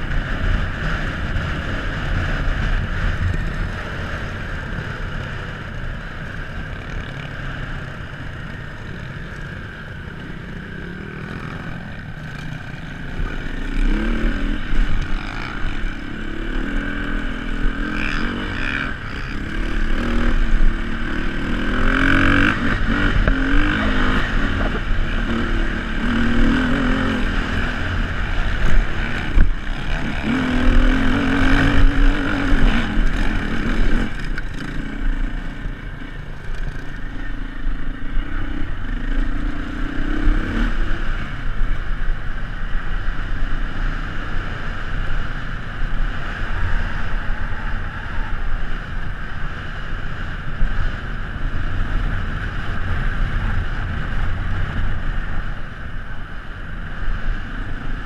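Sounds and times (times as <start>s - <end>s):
motorbike engine revving: 9.2s - 41.6s.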